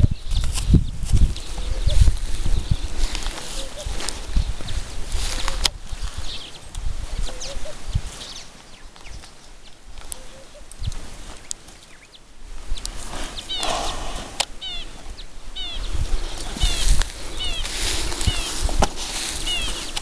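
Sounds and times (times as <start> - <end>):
low thumps and rumble on microphone: 0.0 - 3.3
birds chirping: 0.0 - 20.0.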